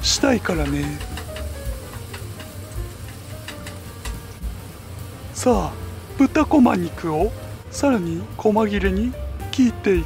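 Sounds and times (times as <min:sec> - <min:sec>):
onion sizzling in frying pan: 0:00.0 - 0:10.0.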